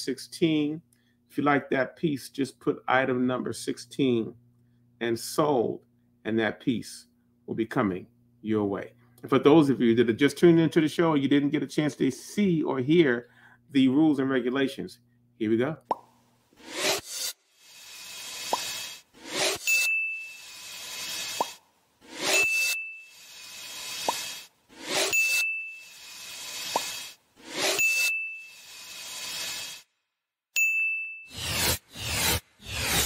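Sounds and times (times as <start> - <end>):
short high ding: 19.7 - 20.5, 22.3 - 23.1, 25.1 - 26.0, 27.8 - 28.7, 30.6 - 31.4.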